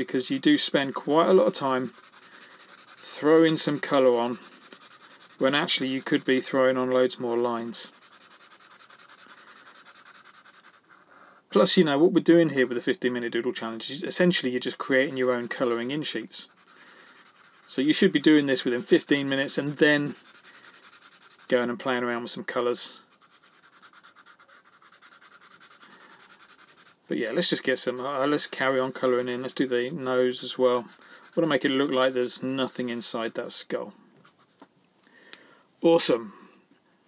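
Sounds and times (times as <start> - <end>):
marker scratching on paper: 0.8 - 11.4, 14.7 - 21.5, 23.1 - 27.1.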